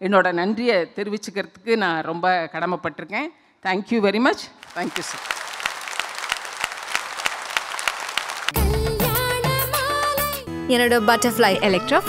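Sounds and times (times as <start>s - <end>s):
audience applauding: 4.6s - 8.8s.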